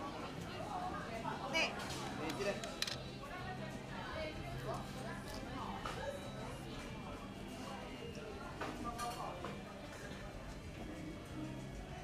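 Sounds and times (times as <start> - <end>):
faint background music: 0.0 - 12.0
indistinct chatter of diners: 0.0 - 12.0.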